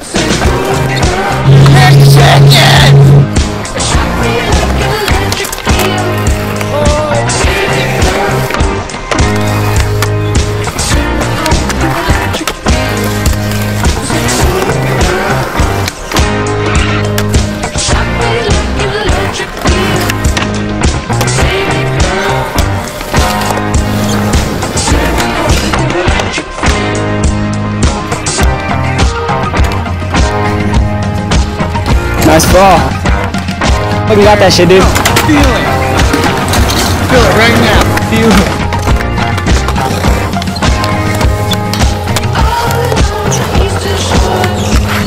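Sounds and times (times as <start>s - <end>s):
music with steady beat: 0.0s - 45.0s
skateboard wheels rolling on concrete: 0.0s - 45.0s.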